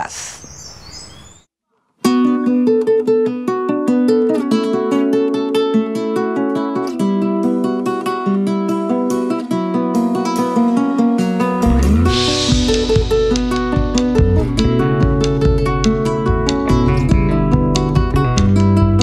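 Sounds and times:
guitar strumming chords: 0:02.0 - 0:19.0
bass and drums: 0:11.6 - 0:19.0.

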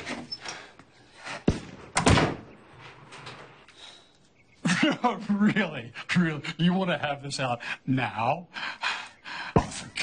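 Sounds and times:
door slamming shut: 0:01.9 - 0:02.5.

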